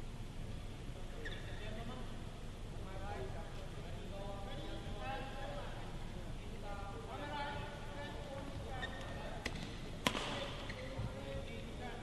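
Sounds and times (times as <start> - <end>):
racket striking shuttlecock: 9.4 - 10.5.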